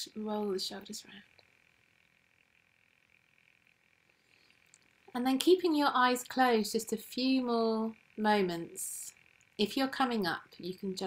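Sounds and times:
faint high-pitched hum: 0.0s - 11.0s.

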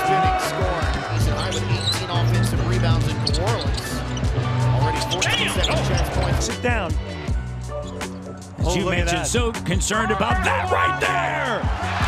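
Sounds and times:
music with bass line: 0.2s - 12.0s.

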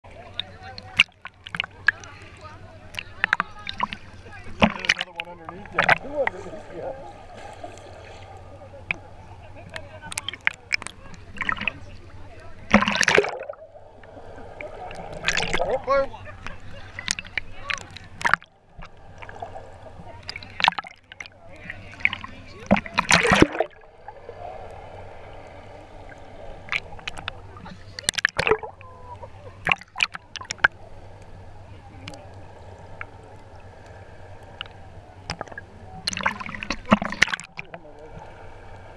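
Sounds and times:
muffled underwater wash: 0.0s - 38.9s
water sloshing and splashing: 0.0s - 38.9s
muffled voices: 0.1s - 18.3s.

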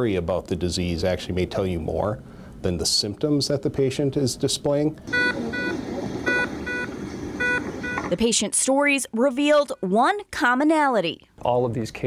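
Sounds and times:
steady room hum: 0.0s - 12.0s
medical equipment alarm beeping: 5.1s - 8.4s.

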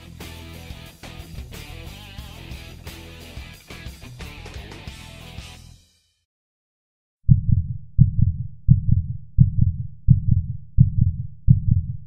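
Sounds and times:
heartbeat double thumps: 7.3s - 12.0s.

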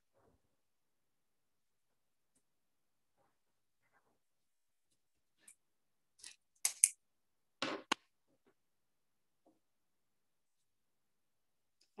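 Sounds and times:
marker pen plastic clicks: 6.2s - 7.0s.

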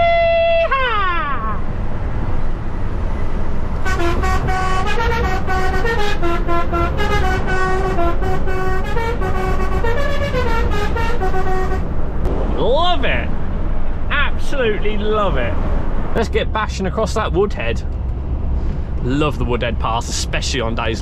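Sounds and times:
truck engine and road noise: 0.0s - 21.0s
musical air horns playing tune: 3.8s - 12.0s.

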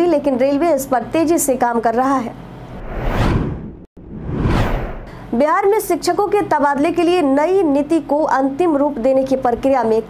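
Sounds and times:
whoosh transition sound effect: 2.7s - 5.2s.

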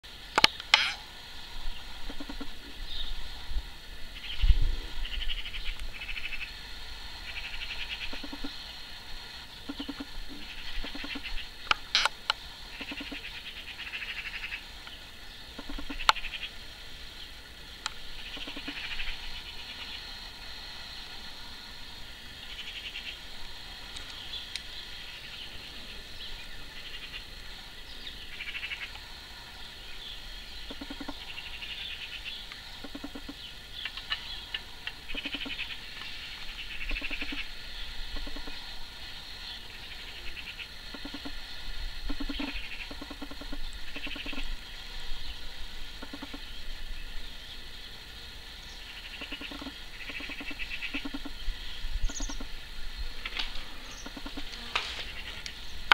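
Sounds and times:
animal high-pitched pulsing trills: 0.4s - 1.1s, 1.7s - 3.3s, 4.1s - 14.8s, 15.4s - 16.7s, 18.1s - 29.0s, 29.7s - 46.8s, 48.7s - 52.6s, 53.7s - 55.9s.

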